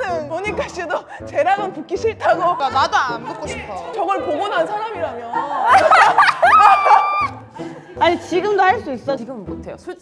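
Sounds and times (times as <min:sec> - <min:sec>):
background music with steady beat: 0:00.0 - 0:10.0
people talking excitedly: 0:00.2 - 0:07.0.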